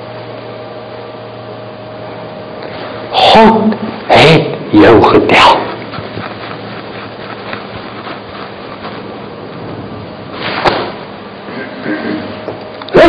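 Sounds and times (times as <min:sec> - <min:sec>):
faint hum: 0:00.0 - 0:13.0
lecture hall hiss: 0:00.0 - 0:13.0
man coughing: 0:11.5 - 0:12.4.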